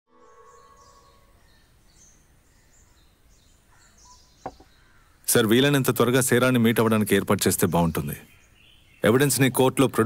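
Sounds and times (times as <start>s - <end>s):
bird chirps: 0.1s - 5.3s
soft steady hiss: 1.0s - 10.0s.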